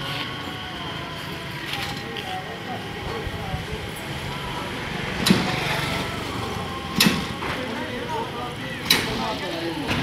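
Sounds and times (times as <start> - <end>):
motor vehicles running: 0.0 - 10.0
people talking: 0.0 - 10.0.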